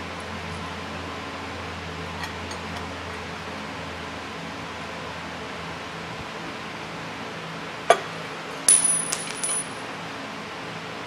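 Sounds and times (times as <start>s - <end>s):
metal engine parts clinking: 8.7s - 9.8s.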